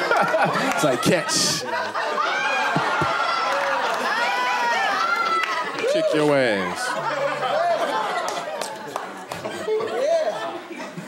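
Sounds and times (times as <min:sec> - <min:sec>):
audience laughing: 0:00.0 - 0:04.9, 0:06.2 - 0:11.0.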